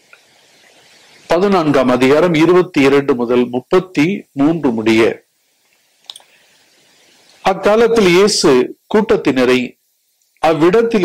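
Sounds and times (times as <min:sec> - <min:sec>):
faint steady hiss: 0:00.0 - 0:11.0
man's voice: 0:07.4 - 0:09.7, 0:10.4 - 0:11.0.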